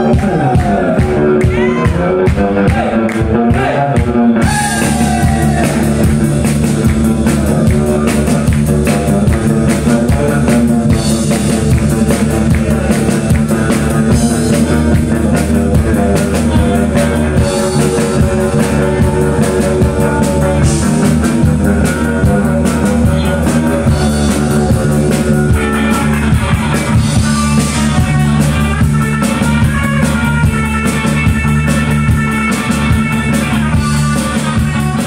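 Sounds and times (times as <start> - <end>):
drum kit: 0.0 - 35.0
electric guitar: 0.0 - 35.0.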